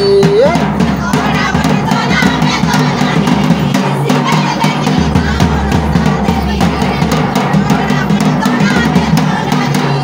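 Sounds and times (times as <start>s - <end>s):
barrel drum beating: 0.0s - 10.0s
group of voices singing: 0.0s - 10.0s.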